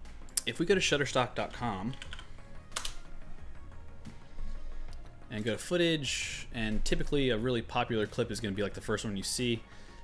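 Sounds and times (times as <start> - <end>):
quiet background music: 0.0 - 10.0
keyboard keys clicking: 1.9 - 3.0.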